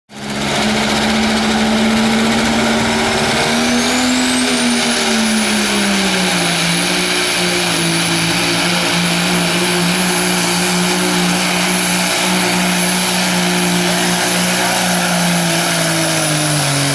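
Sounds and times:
diesel truck engine under load: 0.1 - 16.9
high turbo whistle: 0.5 - 16.9.

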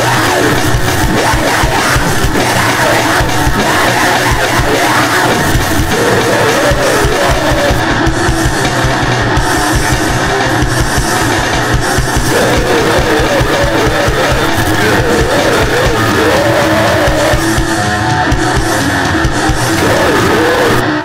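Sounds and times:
wavering pitched line: 0.0 - 20.9
distorted noise wall: 0.0 - 21.0
rapid-fire drumming: 0.0 - 21.0.

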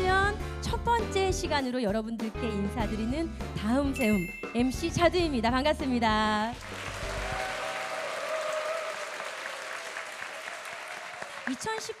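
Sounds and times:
audience applauding: 6.6 - 12.0.

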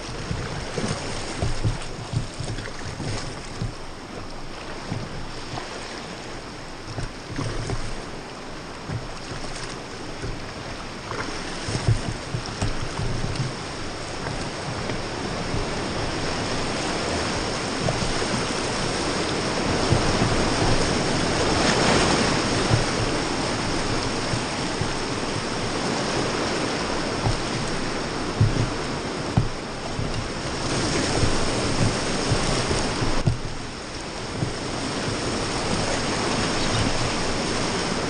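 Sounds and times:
low bumps: 0.0 - 5.6, 6.4 - 38.0
whitewater rapid roaring: 0.0 - 38.0.

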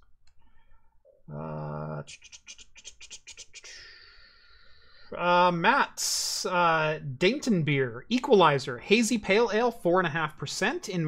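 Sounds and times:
person humming: 1.3 - 3.8
scratchy strokes: 2.1 - 3.6.

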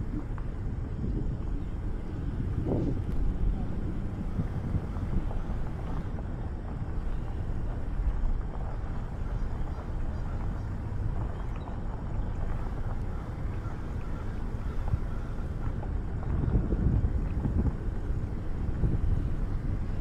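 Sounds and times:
vehicle rumbling on gravel: 0.0 - 20.0
wind buffeting microphone: 0.0 - 20.0.

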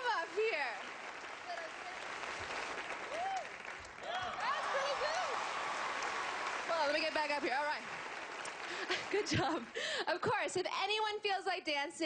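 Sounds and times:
audience applauding: 0.0 - 10.1.

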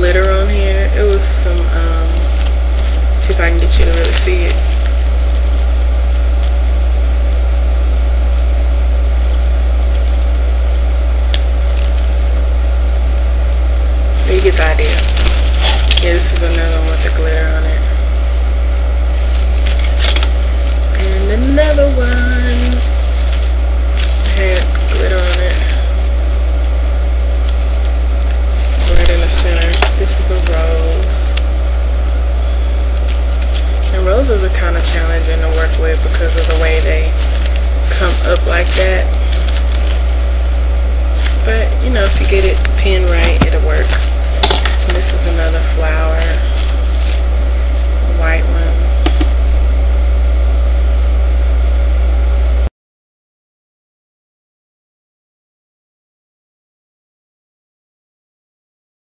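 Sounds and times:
loud low hum: 0.0 - 52.7.

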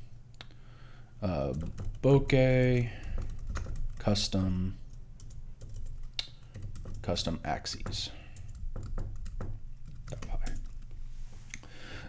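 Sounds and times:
computer keyboard typing: 1.4 - 10.9.

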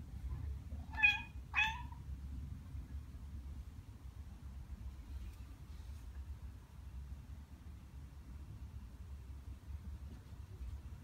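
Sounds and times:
cat meowing: 0.8 - 2.0.

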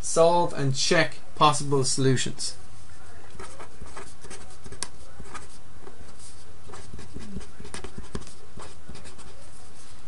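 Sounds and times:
pen scratching on paper: 3.3 - 9.9.

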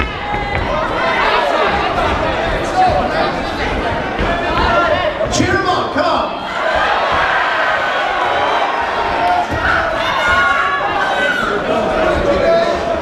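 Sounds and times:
crowd shouting: 0.0 - 13.0.

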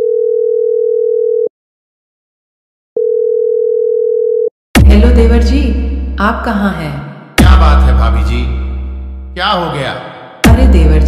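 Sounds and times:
telephone ringback tone: 0.0 - 1.5, 3.0 - 4.5.

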